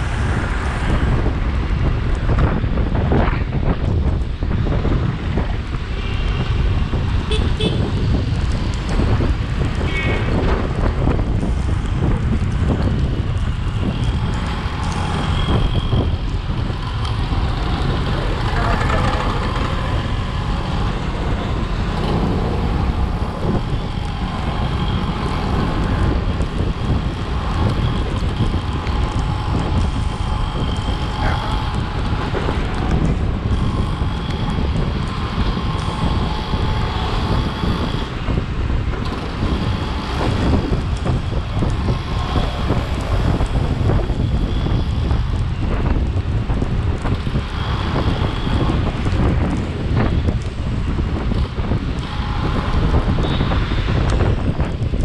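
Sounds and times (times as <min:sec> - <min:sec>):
road traffic: 0:00.0 - 0:55.0
wind rushing over microphone: 0:00.0 - 0:55.0
vehicle horns: 0:07.2 - 0:08.0, 0:09.8 - 0:10.4, 0:52.0 - 0:54.0
motorcycle engine: 0:12.2 - 0:55.0.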